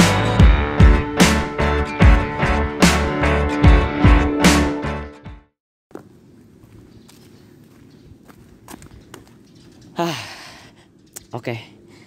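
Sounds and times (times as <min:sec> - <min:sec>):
footsteps on driveway: 0:05.9 - 0:09.9
low outdoor background: 0:05.9 - 0:12.0.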